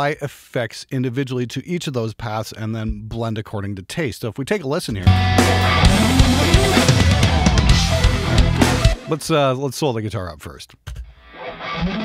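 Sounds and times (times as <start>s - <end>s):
bass: 4.9s - 9.1s
drum kit: 4.9s - 9.4s
distorted electric guitars: 5.0s - 9.2s, 10.9s - 12.0s
lead guitar with effects: 5.0s - 9.2s, 11.1s - 12.0s.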